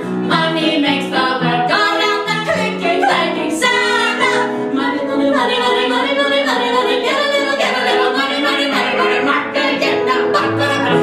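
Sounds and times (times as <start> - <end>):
woman singing: 0.2 - 11.0.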